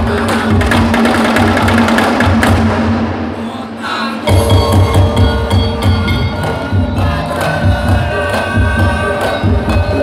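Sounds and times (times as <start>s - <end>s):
gamelan dance music: 0.0s - 2.5s, 3.3s - 10.0s.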